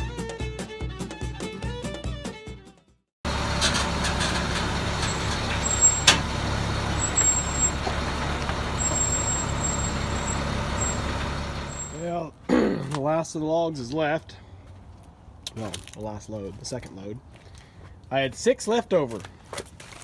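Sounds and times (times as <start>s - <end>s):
fiddle music: 0.0s - 12.0s
truck engine idling: 3.3s - 12.2s.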